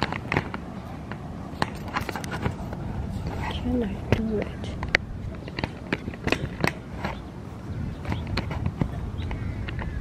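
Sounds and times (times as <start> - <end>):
microphone handling rumble: 0.0 - 10.0.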